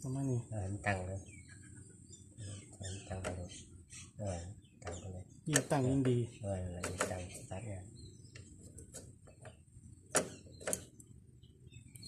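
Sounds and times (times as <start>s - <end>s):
sharp metallic clicks: 4.8s - 5.8s, 10.1s - 11.1s.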